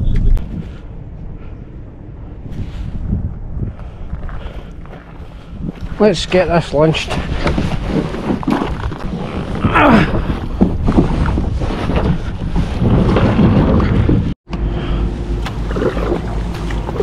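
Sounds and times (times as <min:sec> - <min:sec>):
wind buffeting microphone: 0:00.0 - 0:14.4
kayak hull scraping on pebbles: 0:04.1 - 0:14.2
water sloshing: 0:15.4 - 0:17.0.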